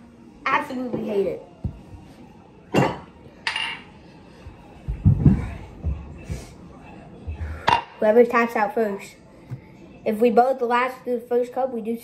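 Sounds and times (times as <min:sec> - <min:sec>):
tableware clinking: 0:02.7 - 0:04.0.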